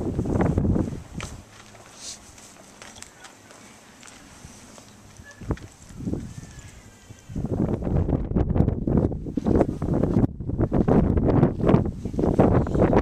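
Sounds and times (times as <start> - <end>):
wind buffeting microphone: 0.0 - 1.6, 4.2 - 13.0.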